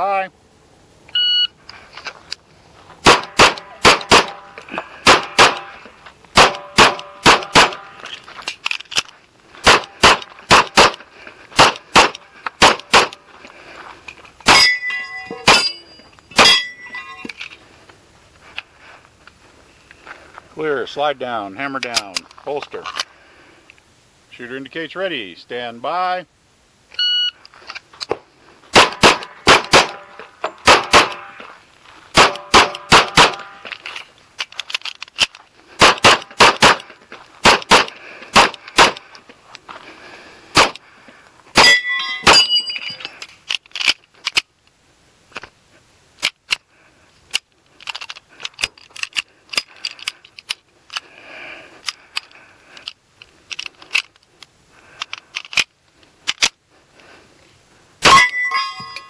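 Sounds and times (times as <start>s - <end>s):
shot timer beeps: 1.1s - 1.5s, 27.0s - 27.4s
pistol shots: 3.0s - 4.4s, 5.0s - 5.7s, 6.4s - 8.0s, 9.6s - 11.0s, 11.6s - 13.2s, 28.7s - 31.3s, 32.2s - 33.6s, 35.8s - 39.0s, 40.6s - 40.8s.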